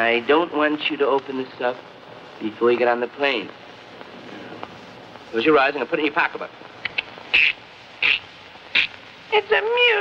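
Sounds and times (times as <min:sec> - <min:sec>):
man making hissing mouth clicks: 0:06.8 - 0:08.9.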